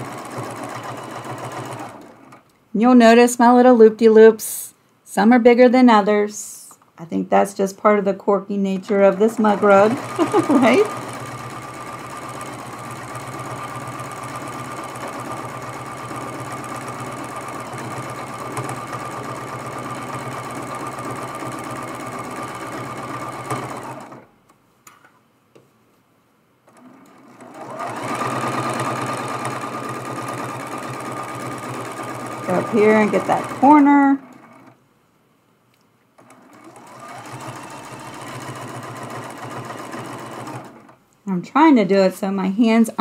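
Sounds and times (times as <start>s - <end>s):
sewing machine running: 0.0s - 2.4s, 8.8s - 24.3s, 26.7s - 34.8s, 36.2s - 41.0s.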